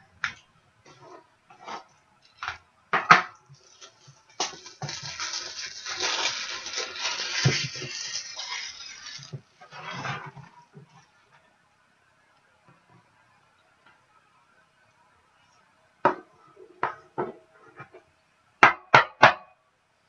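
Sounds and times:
plastic sleeve crinkling and rustling: 3.5s - 11.2s.

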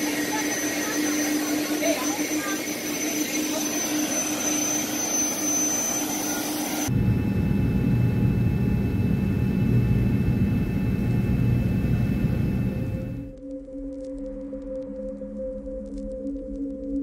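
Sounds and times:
jet engines whining: 0.0s - 13.3s
deep cabin rumble in flight: 6.9s - 13.3s.

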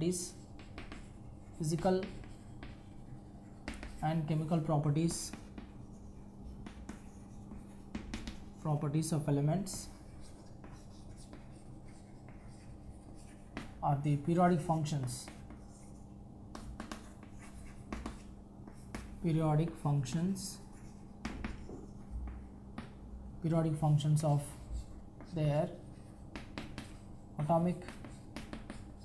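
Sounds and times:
chalk scratching on chalkboard: 0.0s - 19.8s, 20.4s - 23.0s, 24.0s - 29.0s
chalk tapping on board: 0.2s - 8.6s, 9.6s - 19.8s, 20.5s - 23.0s, 24.4s - 29.0s.

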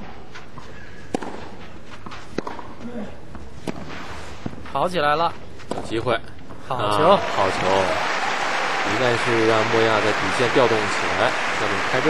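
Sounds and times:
stadium background noise: 0.0s - 12.0s
tennis ball struck by racket: 1.0s - 2.8s, 3.6s - 4.6s, 5.6s - 5.9s.

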